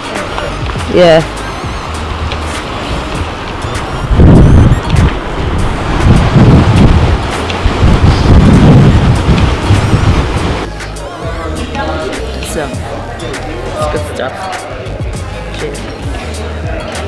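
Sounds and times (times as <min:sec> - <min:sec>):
wind buffeting microphone: 0:00.0 - 0:10.7
faint background music: 0:00.0 - 0:17.0.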